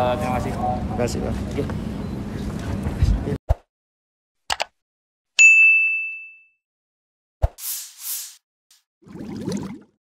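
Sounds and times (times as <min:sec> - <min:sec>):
bright bell-like ding: 0:05.4 - 0:06.6.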